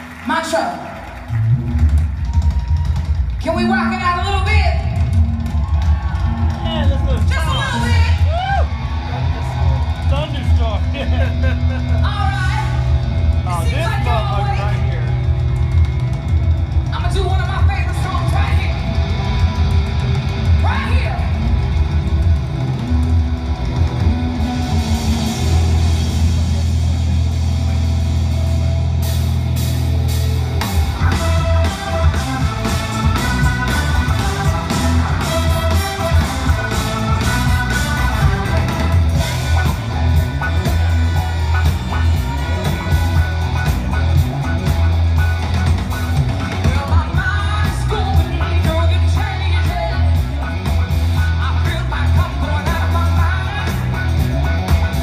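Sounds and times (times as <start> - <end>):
live rock-funk band playing: 1.1 - 55.0
drums fast steady beat: 1.2 - 55.0.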